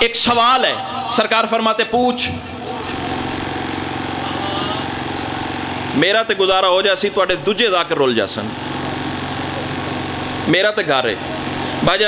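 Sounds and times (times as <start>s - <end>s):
small engine running: 2.2s - 12.0s.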